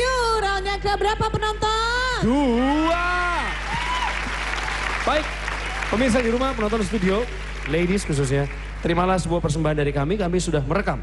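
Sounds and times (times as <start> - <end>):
studio audience applauding: 2.8 - 9.6.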